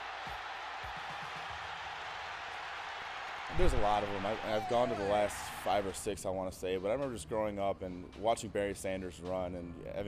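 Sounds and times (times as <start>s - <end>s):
stadium crowd cheering: 0.0s - 6.2s.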